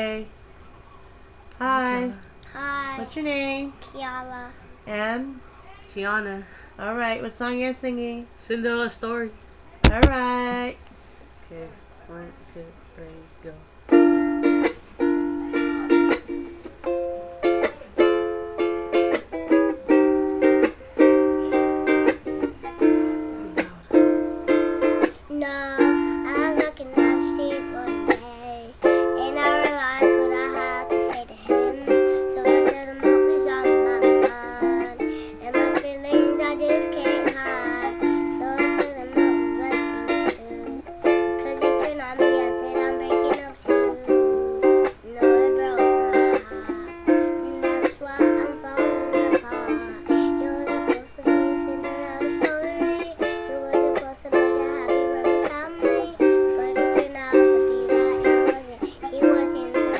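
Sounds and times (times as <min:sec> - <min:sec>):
ukulele strumming: 0:09.8 - 0:10.7, 0:13.9 - 0:59.9.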